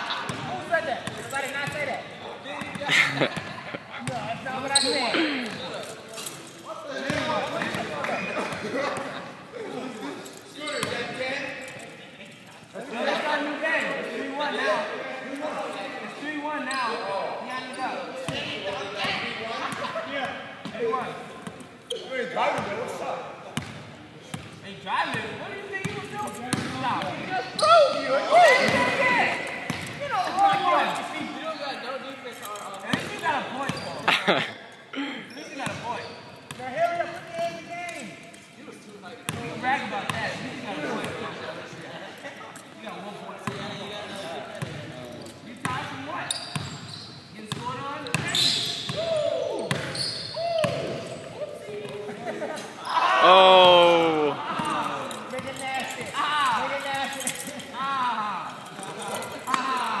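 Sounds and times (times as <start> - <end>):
players' voices: 0.0 - 60.0
loud shout: 52.8 - 54.9.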